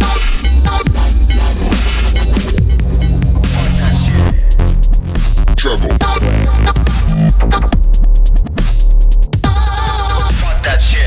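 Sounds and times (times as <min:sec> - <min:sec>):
heavy sub-bass: 0:00.0 - 0:11.0
distorted synth noise: 0:00.3 - 0:07.4.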